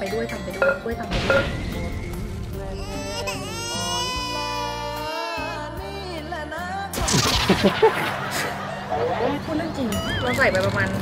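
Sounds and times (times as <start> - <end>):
background music: 0.0 - 11.0
wailing cry: 2.8 - 5.9.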